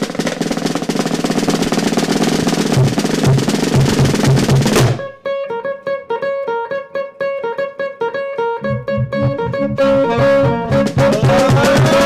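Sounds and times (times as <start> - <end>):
snare drum roll: 0.0 - 5.1, 10.7 - 12.0
low pulsing notes: 8.6 - 12.0.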